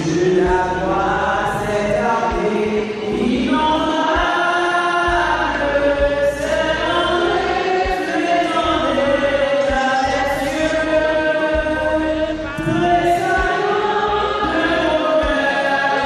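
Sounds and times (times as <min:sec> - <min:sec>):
choir singing a hymn: 0:00.0 - 0:16.0.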